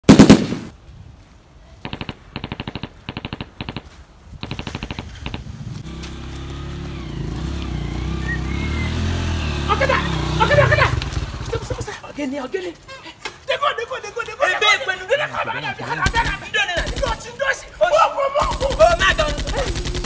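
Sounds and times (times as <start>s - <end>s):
automatic gunfire bursts: 0.0s - 0.7s, 1.8s - 5.5s, 16.1s - 17.3s, 18.4s - 20.0s.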